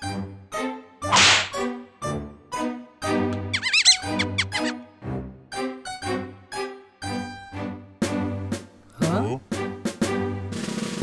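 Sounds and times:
cartoon background music: 0:00.0 - 0:11.0
loud swish: 0:01.1 - 0:01.6.

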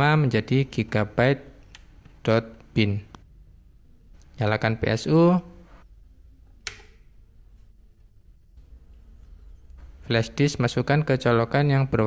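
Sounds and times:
power switch click: 0:06.6 - 0:07.0.

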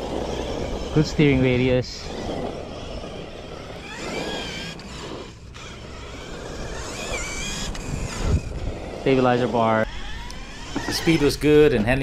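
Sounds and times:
electric motor whine: 0:00.0 - 0:12.0
tyre and drivetrain noise: 0:00.0 - 0:12.0.

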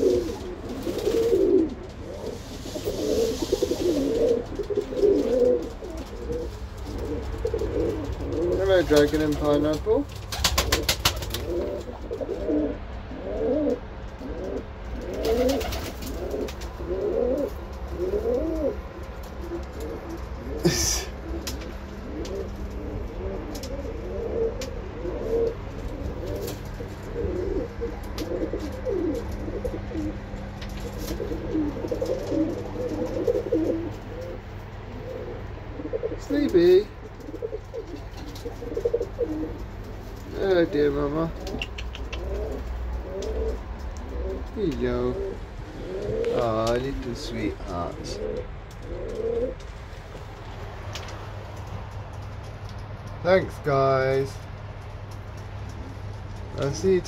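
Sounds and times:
pigeons cooing: 0:00.0 - 0:57.0
quick run of clicks: 0:41.4 - 0:43.9.

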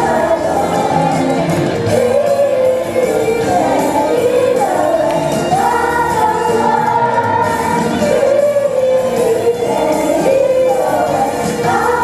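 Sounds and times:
cast singing together: 0:00.0 - 0:12.0.

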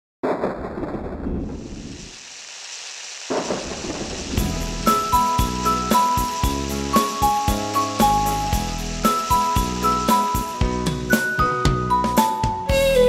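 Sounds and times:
rumbling rush effect: 0:00.2 - 0:11.0
music with heavy beat: 0:04.4 - 0:13.0.

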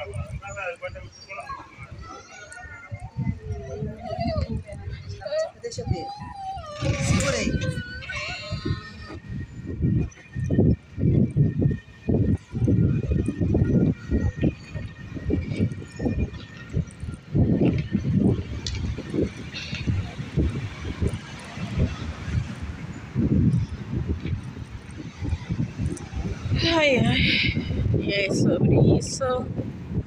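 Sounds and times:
faint street traffic: 0:00.0 - 0:30.0
wind buffeting microphone: 0:00.0 - 0:30.0.

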